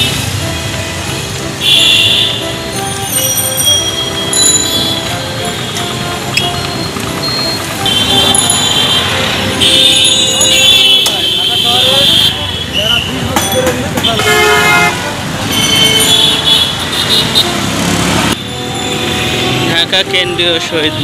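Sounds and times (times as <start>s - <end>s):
vehicle horns: 0.0s - 2.8s, 4.0s - 21.0s
motor vehicle traffic: 0.0s - 21.0s.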